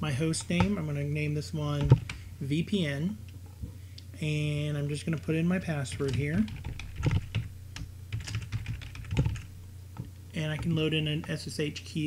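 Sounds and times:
computer keyboard typing: 1.8 - 2.2, 5.9 - 9.5, 10.4 - 11.4.

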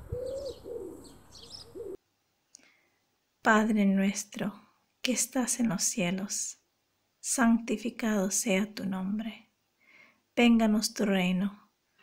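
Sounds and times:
pigeon cooing: 0.0 - 2.0
small birds chirping: 0.0 - 2.7.

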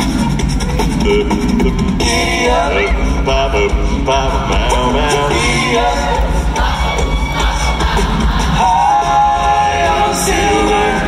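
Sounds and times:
audience cheering and shouting: 0.5 - 11.0
a cappella group singing: 1.0 - 11.0
deep bass voice singing: 1.0 - 11.0.

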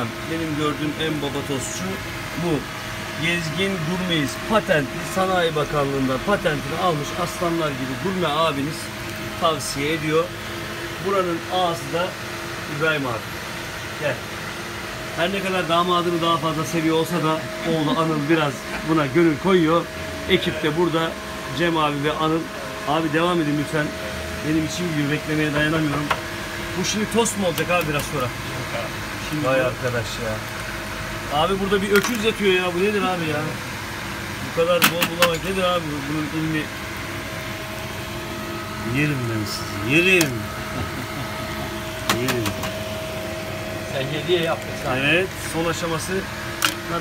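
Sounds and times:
kitchen fan whir and hiss: 0.0 - 47.0.

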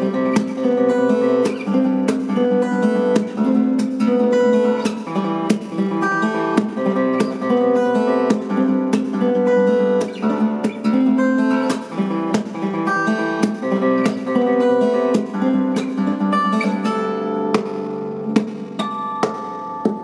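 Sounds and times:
fingerstyle acoustic guitar: 0.0 - 20.0
percussive guitar accents: 0.0 - 20.0.

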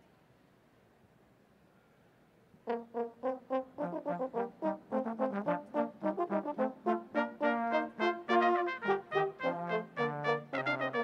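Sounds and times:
brass ensemble playing: 2.6 - 11.0.

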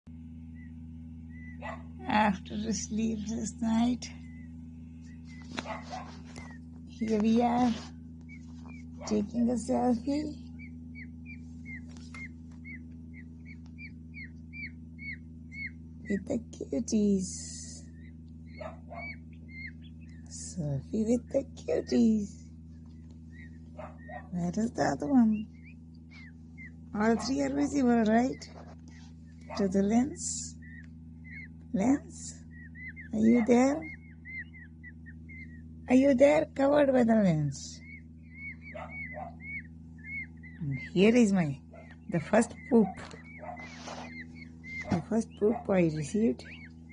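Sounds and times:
chicks peeping: 0.4 - 46.9.

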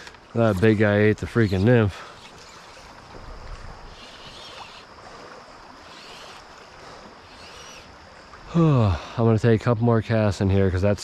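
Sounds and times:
river water flowing over riffle: 0.0 - 9.0.

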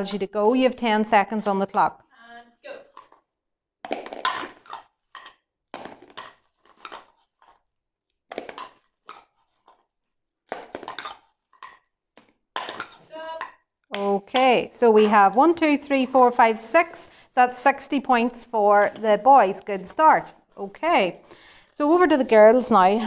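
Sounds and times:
sweets clattering into plastic bowl: 3.8 - 7.6, 10.5 - 11.8, 12.6 - 13.6.

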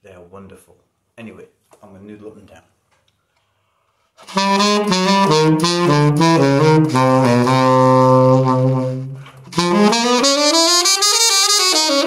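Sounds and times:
tenor saxophone note: 4.2 - 12.0.

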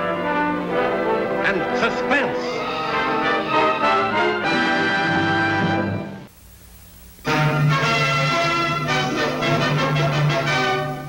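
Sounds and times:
orchestral music led by brass: 0.0 - 6.3, 7.3 - 11.0.

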